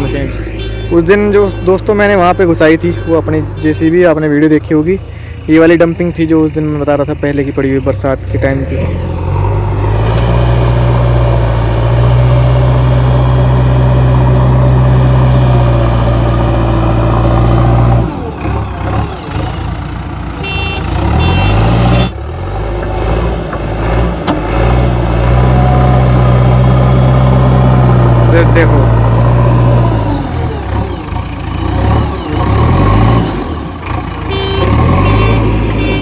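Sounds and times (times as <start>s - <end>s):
high-pitched beeping: 0.0s - 3.9s, 20.4s - 22.2s, 34.3s - 36.0s
diesel engine working hard: 0.0s - 36.0s.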